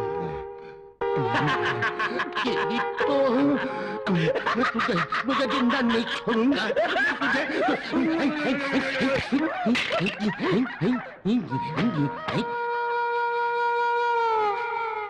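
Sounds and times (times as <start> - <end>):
man laughing wildly: 1.2 - 13.5.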